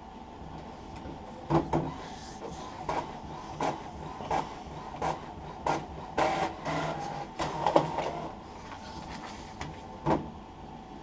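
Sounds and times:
printer mechanism running: 1.0 - 10.3.

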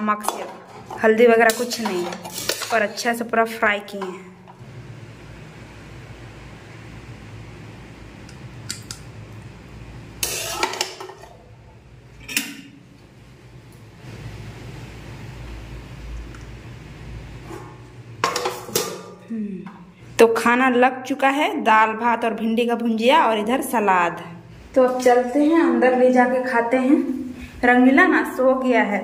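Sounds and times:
steel dishes clattering: 0.2 - 3.0, 10.2 - 11.4, 18.2 - 19.2
spatula scraping metal pan: 0.3 - 3.1.

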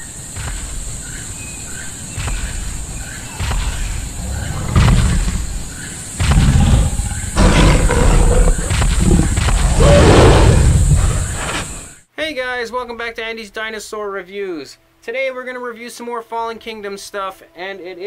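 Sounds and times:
animal roars and growls: 3.3 - 11.9.

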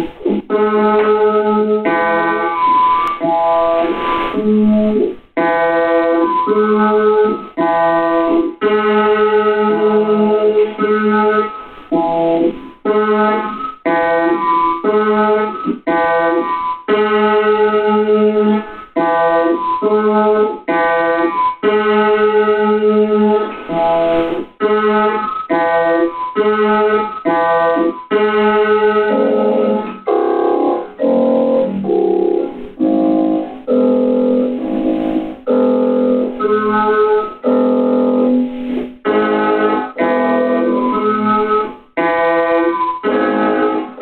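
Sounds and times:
chopped electronic keyboard chords: 0.0 - 44.0.

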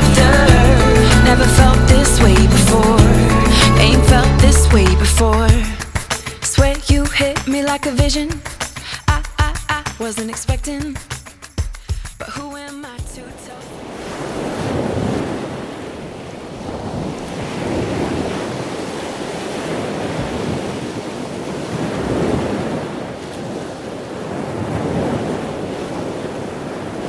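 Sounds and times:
ocean waves washing: 0.0 - 9.0, 11.6 - 27.0.

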